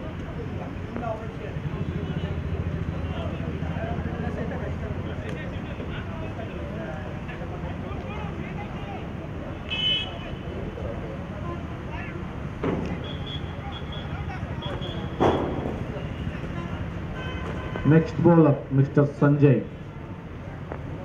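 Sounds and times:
faint distant voices: 0.0s - 18.5s
sharp knock: 15.2s - 15.8s.

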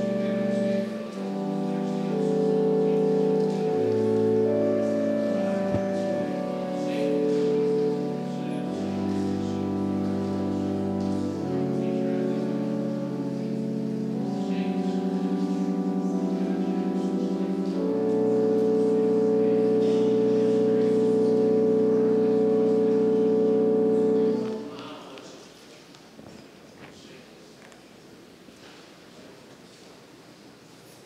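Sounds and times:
pipe organ chords: 0.0s - 25.2s.

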